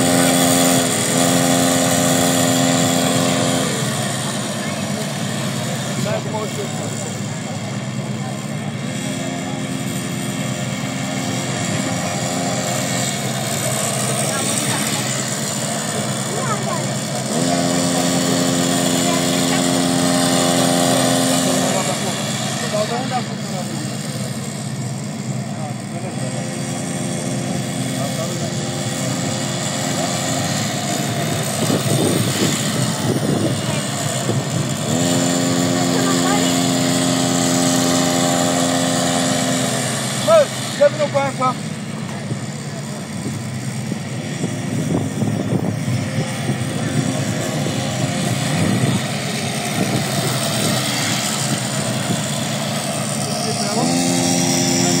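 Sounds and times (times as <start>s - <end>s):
small gasoline engine running: 0.0s - 55.0s.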